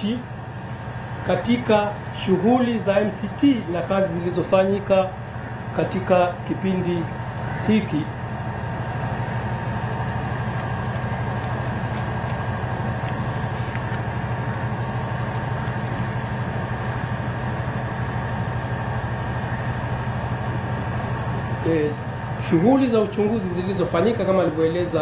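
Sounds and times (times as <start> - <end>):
low mechanical hum: 0.0 - 25.0.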